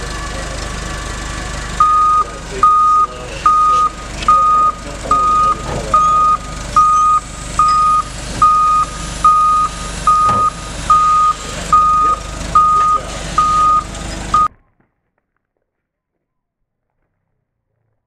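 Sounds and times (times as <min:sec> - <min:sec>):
forklift engine running: 0:00.0 - 0:14.5
forklift reversing alarm beeping: 0:00.0 - 0:14.5.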